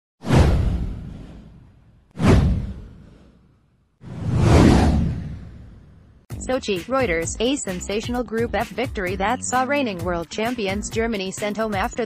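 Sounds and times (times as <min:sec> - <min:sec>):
deep boom: 0:00.2 - 0:03.2
whoosh: 0:00.2 - 0:06.3.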